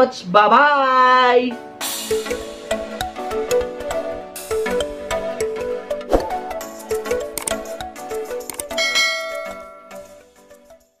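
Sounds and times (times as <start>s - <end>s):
notification bell ding: 8.8s - 10.0s
soft bell notes: 8.8s - 10.1s.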